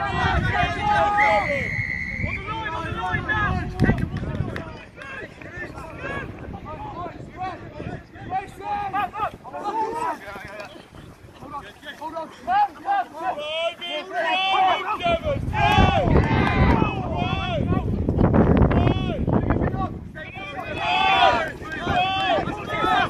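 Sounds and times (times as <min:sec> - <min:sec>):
wind buffeting microphone: 0:00.0 - 0:13.4, 0:14.5 - 0:23.0
referee's whistle blast: 0:01.1 - 0:02.6.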